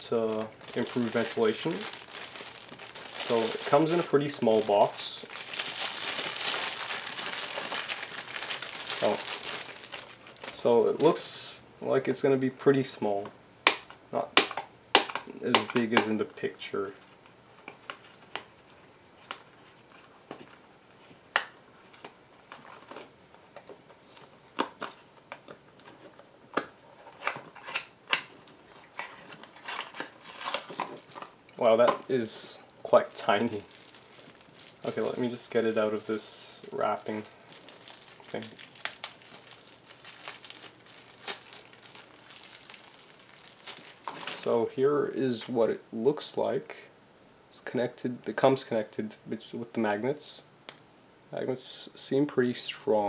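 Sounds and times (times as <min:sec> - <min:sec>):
packaging wrap crinkling: 0:00.0 - 0:11.2, 0:21.4 - 0:44.5.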